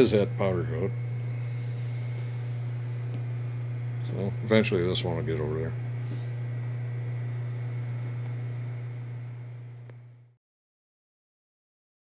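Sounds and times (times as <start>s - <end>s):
low hum: 0.0s - 10.4s.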